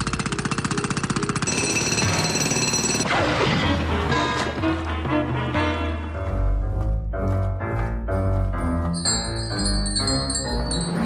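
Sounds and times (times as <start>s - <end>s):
high ringing tones: 9.0s - 11.0s.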